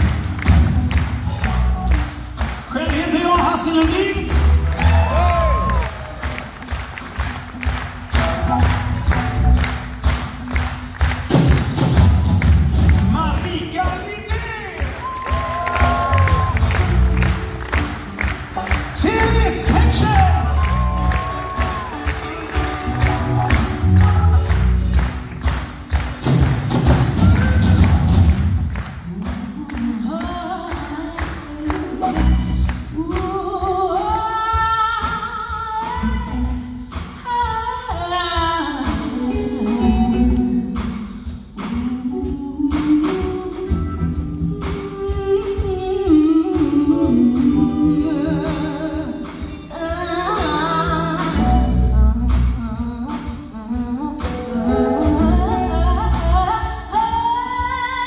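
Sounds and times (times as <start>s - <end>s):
bass guitar: 0.0s - 13.8s, 15.0s - 29.0s, 31.7s - 33.4s, 43.0s - 45.0s, 46.1s - 58.0s
drums: 0.0s - 58.0s
rock band playing live: 0.0s - 58.0s
audience cheering: 3.8s - 7.1s, 14.4s - 25.0s.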